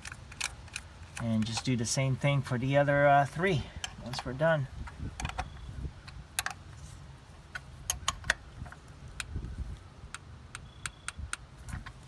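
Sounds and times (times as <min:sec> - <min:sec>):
hand tool clicks and clinks: 0:00.0 - 0:01.8
low steady rumble: 0:00.0 - 0:12.0.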